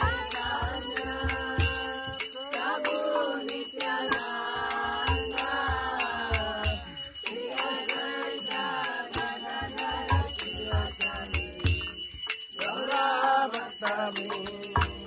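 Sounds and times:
hand cymbals: 0:00.0 - 0:15.0
voices singing: 0:00.0 - 0:15.0.

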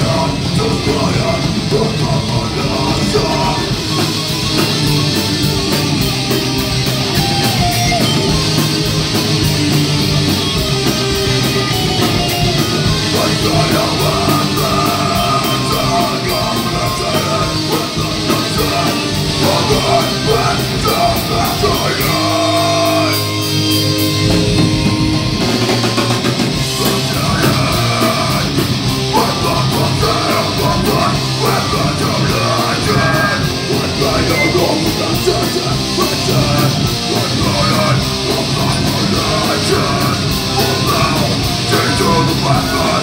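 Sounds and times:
bass guitar: 0:00.0 - 0:43.0
distorted electric guitar: 0:00.0 - 0:43.0
drums with repeating cymbal beat: 0:00.0 - 0:43.0.

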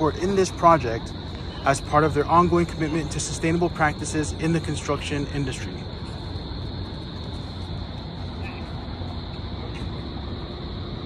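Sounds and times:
constant high hiss: 0:00.0 - 0:11.0
traffic rumble: 0:00.0 - 0:11.0.

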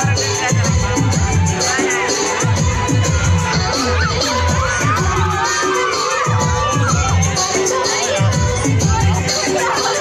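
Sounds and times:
dance music with bass beat: 0:00.0 - 0:10.0
children shouting and cheering: 0:00.2 - 0:10.0.

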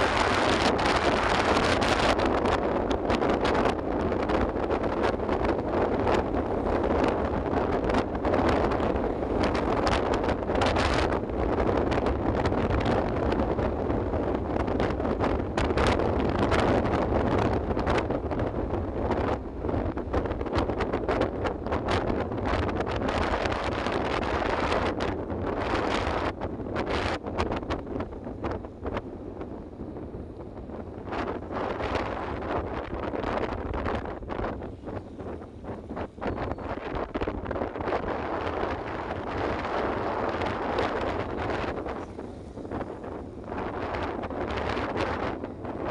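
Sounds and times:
road noise on wet road: 0:00.0 - 0:22.4, 0:37.0 - 0:45.9
wind buffeting microphone: 0:00.0 - 0:45.9.

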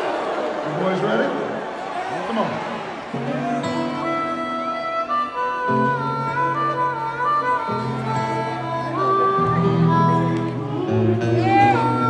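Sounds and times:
live band playing instrumental: 0:03.4 - 0:12.0.

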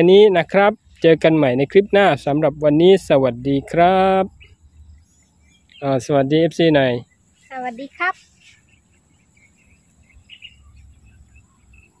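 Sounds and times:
small wildlife chirps: 0:00.0 - 0:12.0.

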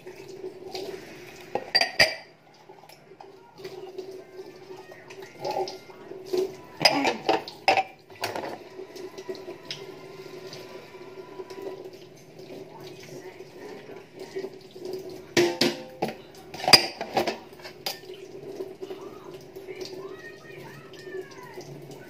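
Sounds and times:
dishes and cutlery clattering: 0:01.5 - 0:04.1, 0:05.1 - 0:08.6, 0:14.8 - 0:18.8.

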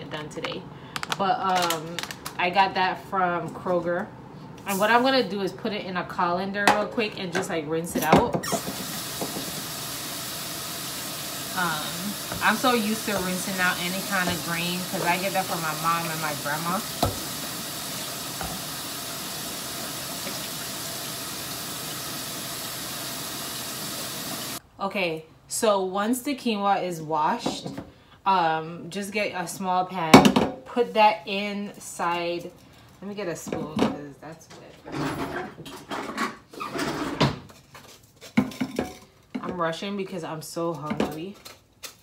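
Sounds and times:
kitchen tap running: 0:08.4 - 0:24.6.

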